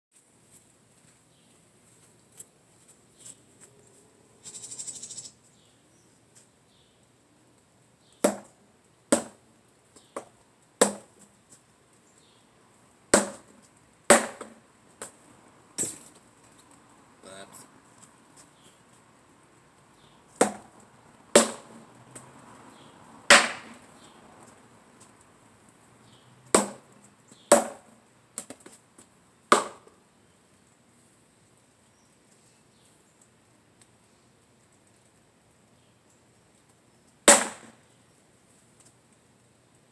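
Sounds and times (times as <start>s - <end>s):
insect trilling: 4.4s - 5.4s
faint high hum of insects: 4.4s - 5.8s
sword striking wooden post: 8.2s - 8.5s, 10.8s - 11.1s, 13.1s - 13.5s, 14.1s - 14.6s, 20.4s - 20.7s, 21.4s - 21.8s, 23.3s - 23.8s, 26.6s - 26.9s, 27.5s - 27.9s, 29.5s - 29.9s, 37.3s - 37.8s.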